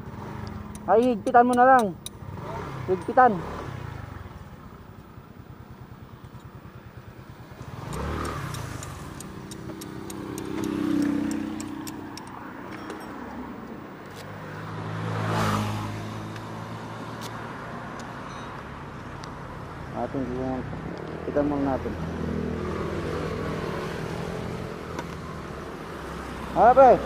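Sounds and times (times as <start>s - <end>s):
motorcycle engine idling: 0.0s - 13.0s
vehicles passing: 0.0s - 27.0s.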